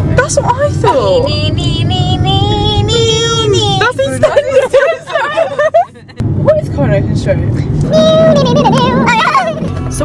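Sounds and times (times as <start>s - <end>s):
car road noise: 0.0s - 10.0s.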